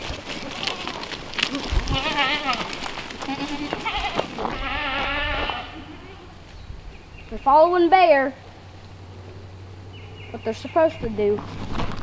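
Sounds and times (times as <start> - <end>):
goats bleating: 0.0 - 6.4
hooves clicking: 0.0 - 12.0.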